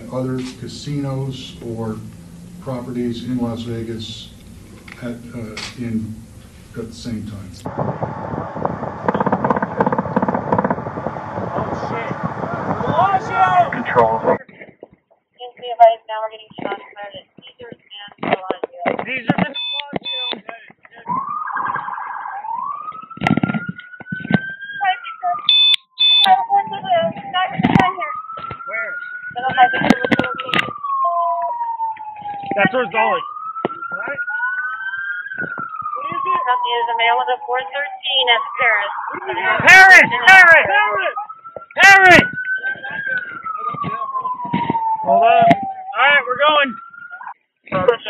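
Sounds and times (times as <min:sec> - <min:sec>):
voices talking: 0:00.0 - 0:08.0, 0:08.8 - 0:23.2, 0:24.0 - 0:25.5, 0:26.1 - 0:48.0
police siren wailing: 0:00.0 - 0:14.4, 0:21.0 - 0:48.0
short radio beeps: 0:19.3 - 0:21.2, 0:25.2 - 0:26.5.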